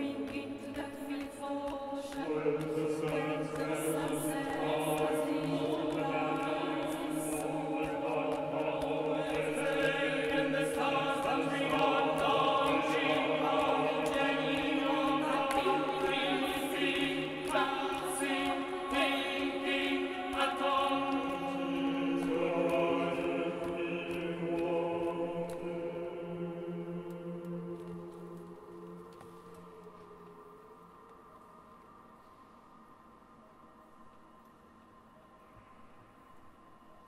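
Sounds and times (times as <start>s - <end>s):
vocal ensemble singing chords: 0.0s - 33.2s.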